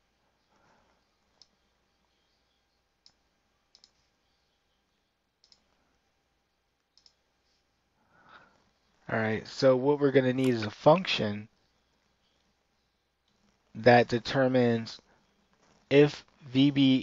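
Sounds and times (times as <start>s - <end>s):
computer mouse clicks: 1.4s - 1.6s, 3.0s - 4.1s, 5.4s - 5.8s, 6.8s - 7.2s.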